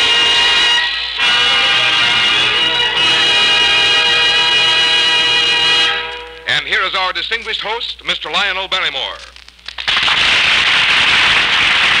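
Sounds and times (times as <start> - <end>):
theme music held chord: 0.0 - 6.6.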